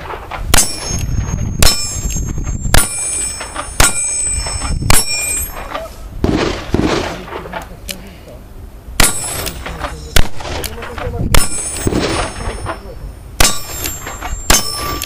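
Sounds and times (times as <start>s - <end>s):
metallic ring of steel target: 0.0s - 5.8s, 9.0s - 15.0s.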